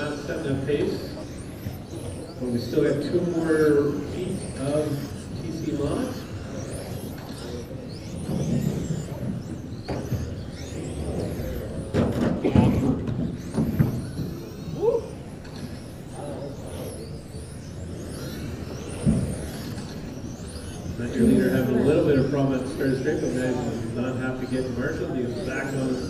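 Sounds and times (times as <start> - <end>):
rc car motors whining: 0.0 - 26.0.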